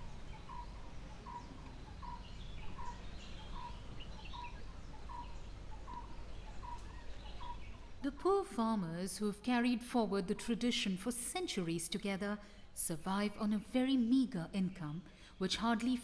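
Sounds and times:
small birds chirping: 0.0s - 8.6s
low background noise: 0.0s - 16.0s.

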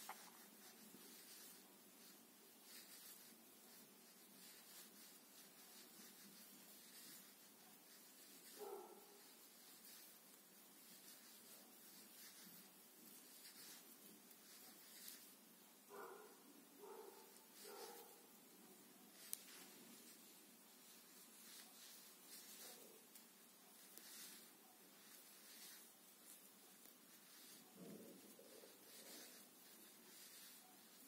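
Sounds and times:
yarn rubbing on crochet hook: 0.0s - 31.0s.

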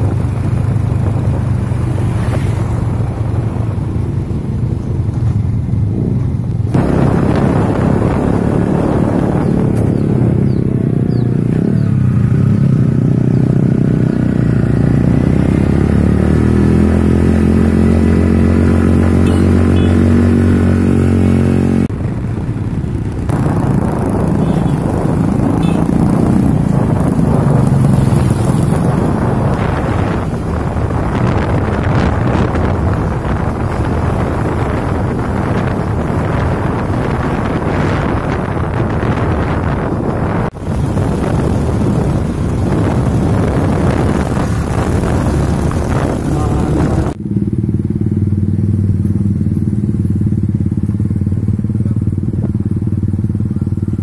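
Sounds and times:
motorcycle engine running: 0.0s - 54.0s
road rumble: 0.0s - 54.0s.

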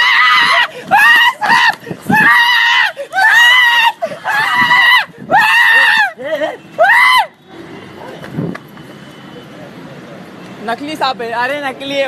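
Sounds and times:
person screaming high-pitched: 0.0s - 6.2s.

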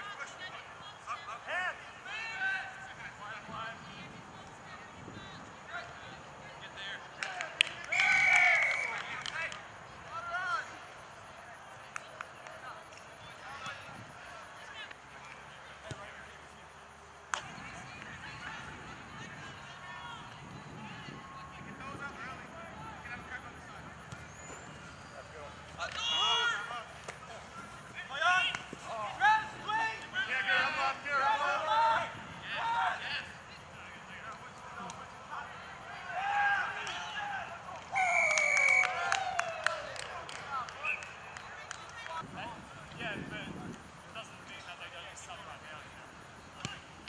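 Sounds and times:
faint field noise: 0.0s - 47.0s
people shouting: 25.8s - 33.0s.

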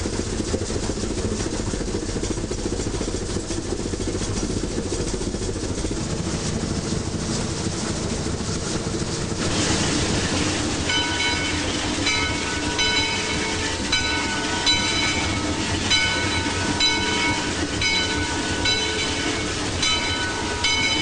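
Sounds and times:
steam train rumbling: 0.0s - 21.0s
train bell ringing: 10.7s - 21.0s.

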